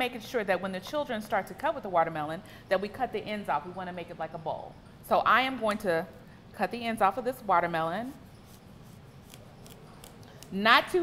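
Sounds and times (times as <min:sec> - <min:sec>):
knife crunching through melon rind: 0:09.2 - 0:10.6.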